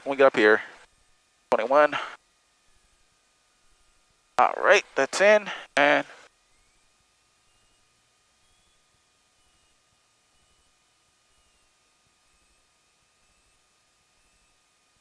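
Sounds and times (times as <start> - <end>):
faint thin steady tones: 0.0 - 15.0.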